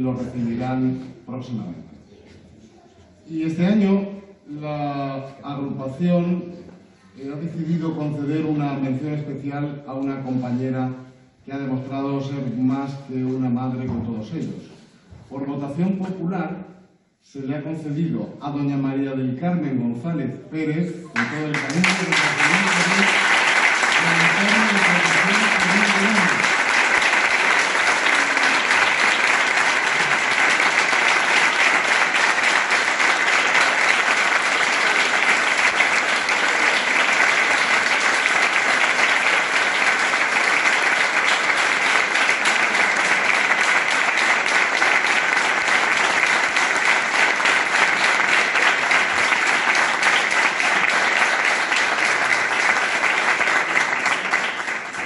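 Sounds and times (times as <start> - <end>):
audience applauding: 21.1 - 55.0.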